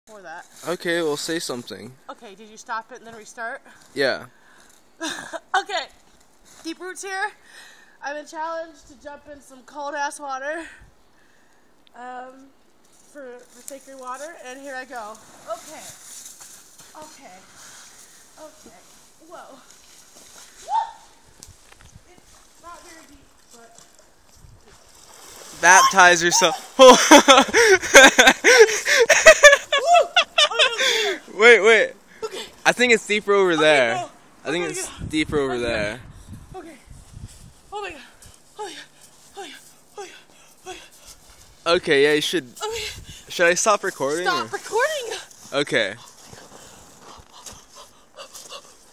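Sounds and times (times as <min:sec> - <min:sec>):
person yelping: 0:25.6 - 0:26.8.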